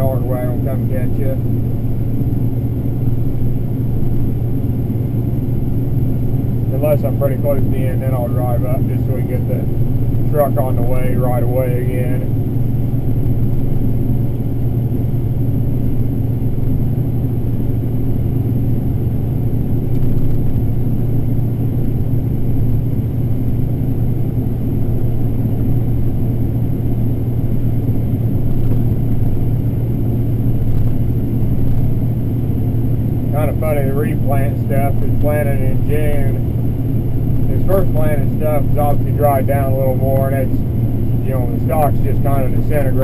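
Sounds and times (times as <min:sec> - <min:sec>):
combine harvester running: 0:00.0 - 0:43.0.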